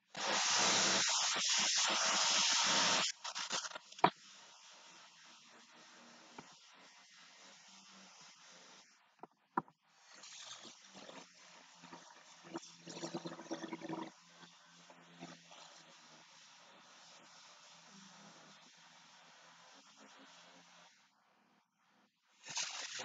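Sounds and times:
room hiss: 0:00.0 - 0:09.2, 0:09.9 - 0:23.0.

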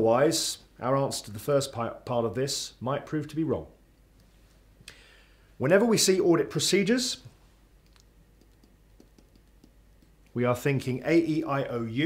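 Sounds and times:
person speaking: 0:05.6 - 0:12.0.

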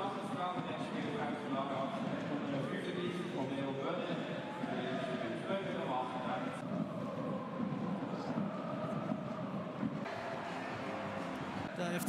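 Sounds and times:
stadium crowd cheering: 0:00.0 - 0:12.0.

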